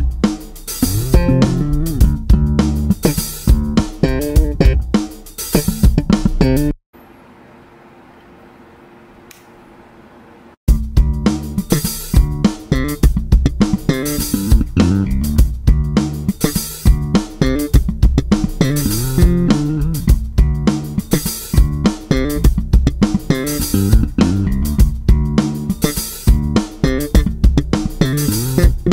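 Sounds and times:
drum-kit backing track: 0.0 - 6.8, 10.7 - 28.9
electric bass played fingerstyle: 0.0 - 6.8, 10.7 - 28.9.

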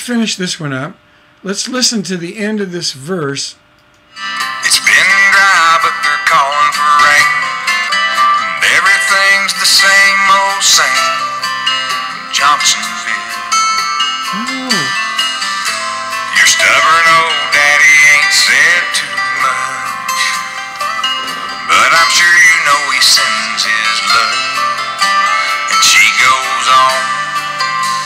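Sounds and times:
guitar accompaniment: 4.1 - 28.0
man singing: 4.6 - 7.6, 8.6 - 13.6, 14.3 - 15.0, 16.3 - 20.0, 21.7 - 24.6, 25.7 - 27.3.

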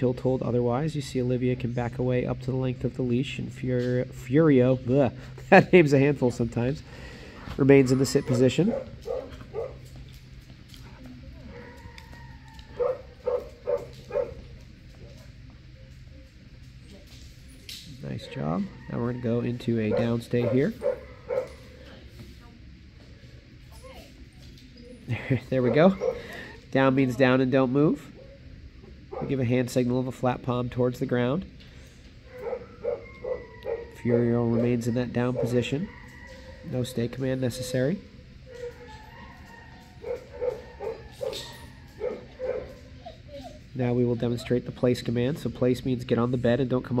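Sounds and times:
dog barking: 8.3 - 9.9, 12.7 - 14.5, 19.8 - 21.8, 25.6 - 26.5, 29.1 - 29.4, 32.3 - 36.7, 38.5 - 43.1
dog whining: 32.3 - 36.8, 37.4 - 44.7.

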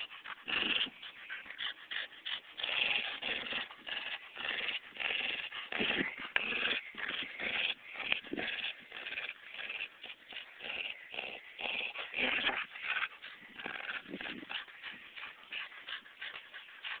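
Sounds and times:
dog vocalizing while tugging: 0.0 - 17.0.

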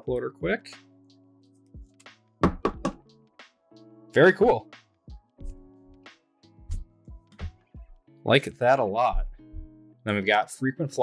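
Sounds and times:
soft background music: 0.0 - 11.0
plastic card holder knocking on table: 2.4 - 3.0.

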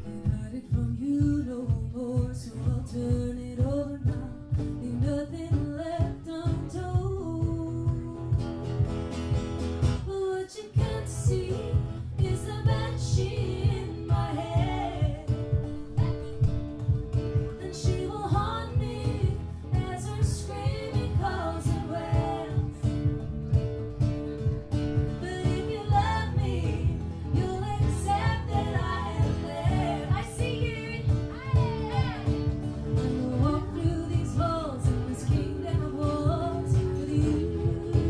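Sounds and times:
women singing: 0.0 - 8.6, 10.0 - 16.5, 17.5 - 23.2, 25.0 - 38.0
strummed acoustic guitar: 0.0 - 38.0
frame drum beat: 10.8 - 38.0.

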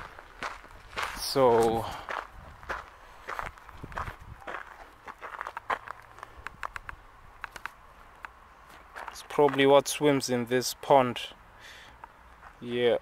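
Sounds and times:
footsteps on a path: 0.0 - 9.8, 12.0 - 12.8.

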